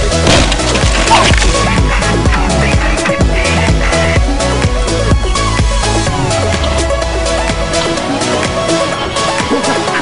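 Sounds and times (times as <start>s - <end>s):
bicycle crashing into wooden ramp: 0.0s - 1.6s
dance music with steady beat: 1.7s - 6.1s.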